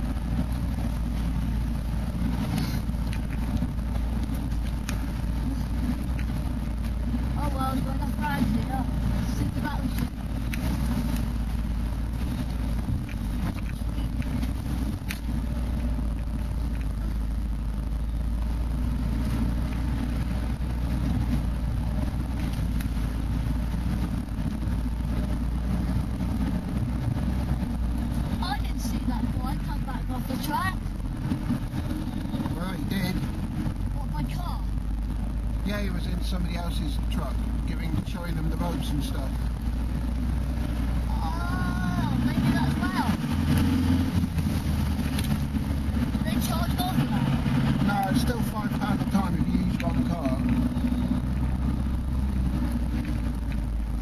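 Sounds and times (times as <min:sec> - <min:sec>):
vehicle engine rumble: 0:00.0 - 0:54.0.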